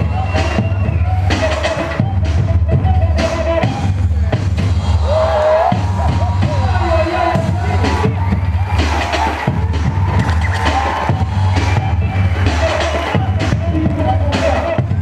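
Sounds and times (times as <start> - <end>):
loud bass-heavy music with drums: 0.0 - 15.0.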